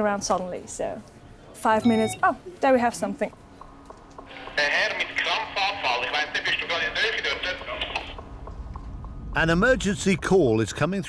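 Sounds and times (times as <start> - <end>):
person speaking over phone line: 1.8 - 2.3.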